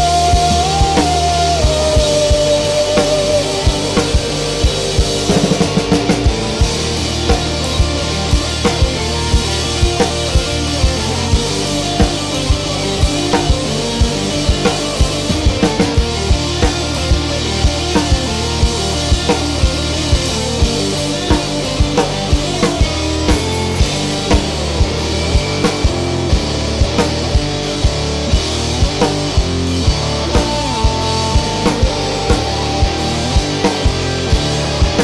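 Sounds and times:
rock band playing: 0:00.0 - 0:35.0.

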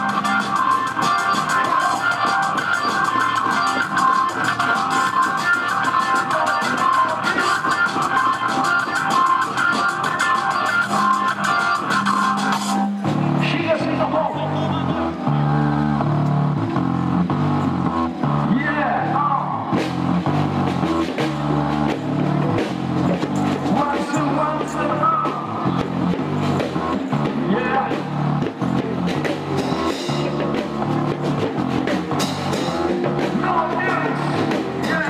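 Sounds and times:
person singing: 0:00.0 - 0:12.3
amplified band music: 0:00.0 - 0:35.0.

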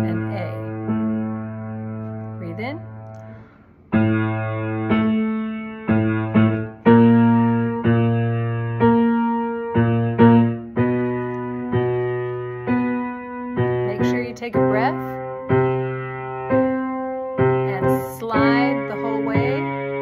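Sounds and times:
slow piano notes and chords: 0:00.0 - 0:20.0.

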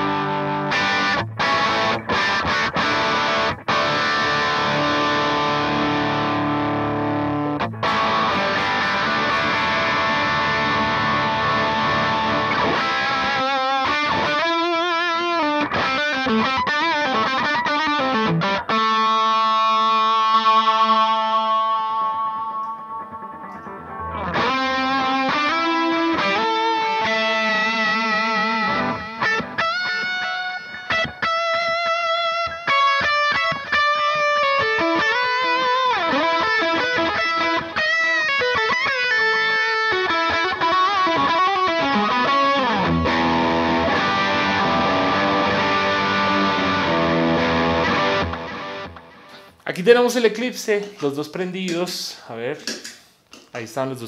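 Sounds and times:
distorted electric guitar: 0:00.0 - 0:49.6.

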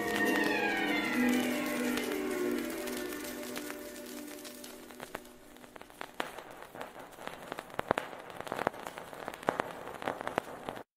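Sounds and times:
vinyl crackle and pops: 0:00.0 - 0:10.9
faint hiss: 0:00.4 - 0:10.8.

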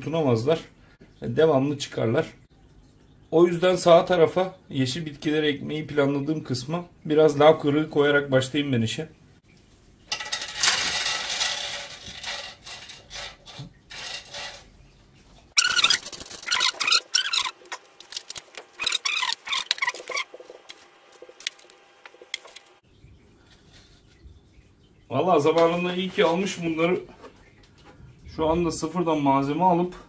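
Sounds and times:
rocks rattling on glass: 0:10.1 - 0:14.8, 0:15.5 - 0:20.7
high squeaks: 0:15.6 - 0:17.9, 0:18.8 - 0:20.4.

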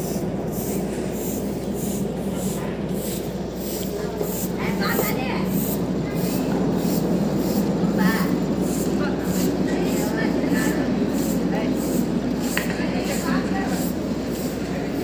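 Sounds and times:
rhythmic machinery clatter: 0:00.0 - 0:15.0.

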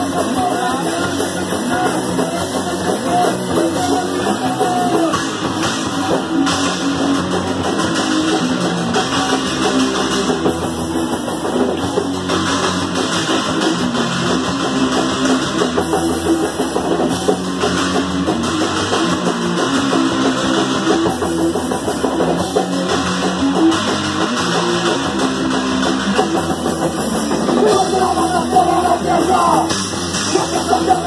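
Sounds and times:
punk rock band playing live: 0:00.0 - 0:31.0.

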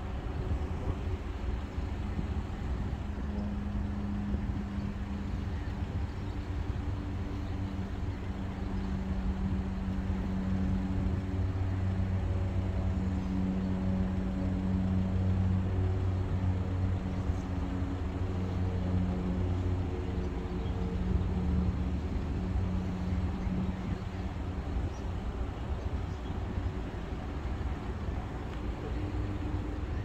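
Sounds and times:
low engine drone: 0:00.0 - 0:30.0.

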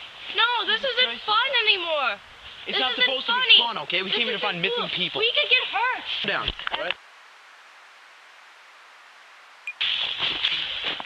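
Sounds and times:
faint recording hiss: 0:00.0 - 0:11.0.

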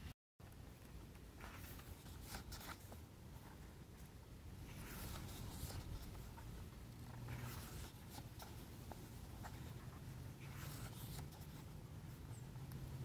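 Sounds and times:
book pages turning: 0:01.4 - 0:03.6, 0:04.6 - 0:11.7.

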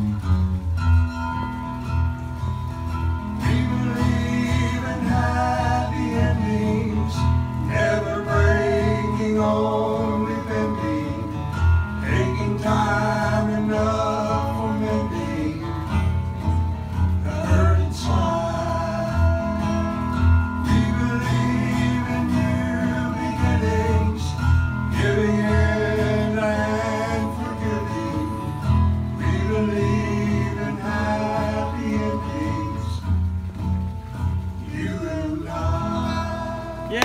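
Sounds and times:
acoustic guitars: 0:00.0 - 0:37.0
person singing: 0:34.8 - 0:37.0.

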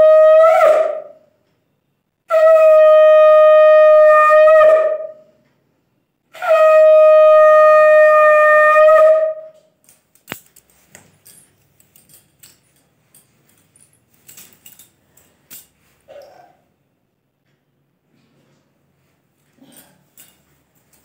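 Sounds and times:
conch shell blasts: 0:02.3 - 0:05.2.

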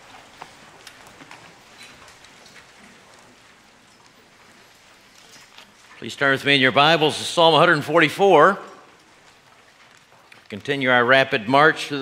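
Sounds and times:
faint clicks: 0:08.7 - 0:10.8.

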